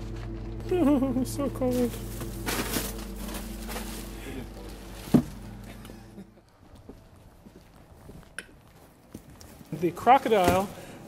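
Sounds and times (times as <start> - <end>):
freezer cooling unit hum: 0.0 - 6.6
footsteps on concrete: 6.6 - 9.8.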